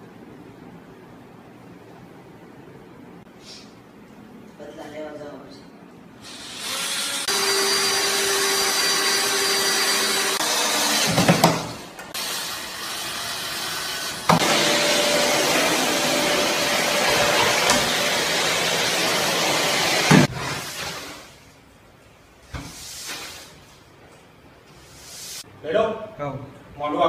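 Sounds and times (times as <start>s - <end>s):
vacuum cleaner running: 6.2s - 21.3s.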